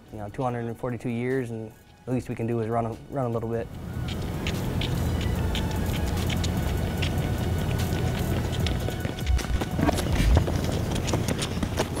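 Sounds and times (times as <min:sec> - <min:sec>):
background music: 0:00.0 - 0:12.0
boots running on pavement: 0:03.6 - 0:12.0.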